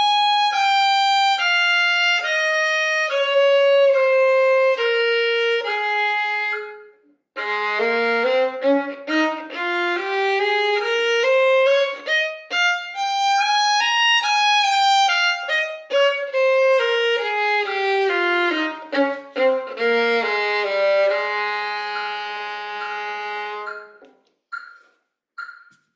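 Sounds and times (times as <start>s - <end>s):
solo violin playing: 0.0s - 24.0s
metronome beeps: 21.9s - 25.8s.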